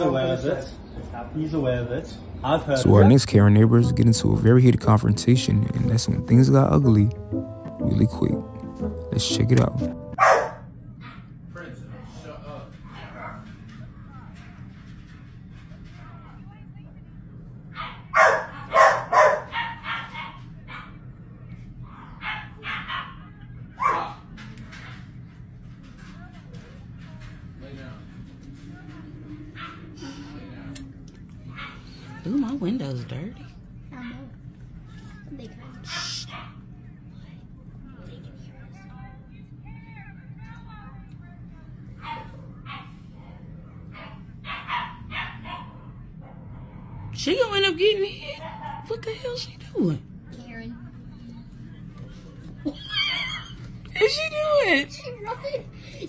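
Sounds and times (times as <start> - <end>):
dog barking: 10.2 - 11.2, 17.8 - 21.0, 21.9 - 24.3, 35.9 - 36.6, 42.0 - 43.0, 43.9 - 46.5, 48.4 - 49.0
low hum: 26.8 - 33.8
low rumble: 27.5 - 31.7.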